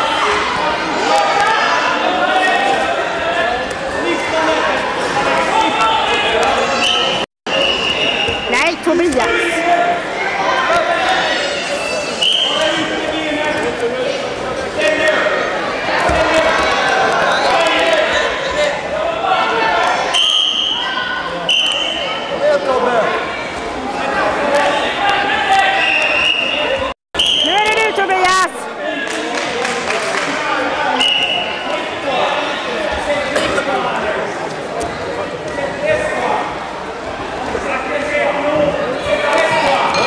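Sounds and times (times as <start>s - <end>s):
people talking and calling out: 0.0s - 40.0s.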